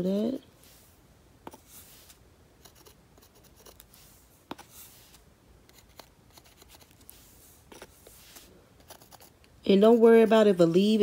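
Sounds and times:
paintbrush scratching: 0.2s - 9.4s.

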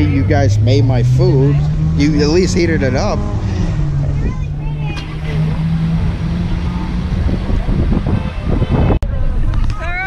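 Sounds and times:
cars in slow traffic: 0.0s - 10.0s.

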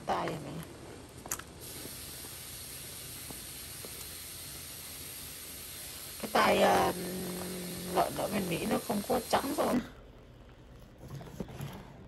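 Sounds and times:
water boiling in a pot: 0.1s - 10.2s.

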